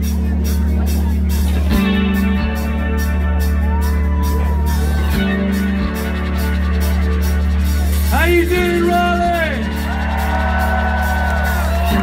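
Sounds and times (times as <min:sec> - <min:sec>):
bass guitar: 0:00.0 - 0:12.0
electric guitar chords: 0:00.0 - 0:12.0.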